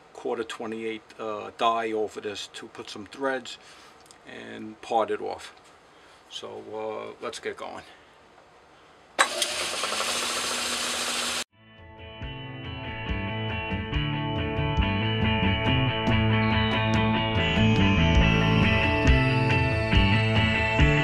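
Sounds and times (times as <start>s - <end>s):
lathe running: 9.2s - 11.5s
background music: 11.8s - 21.0s.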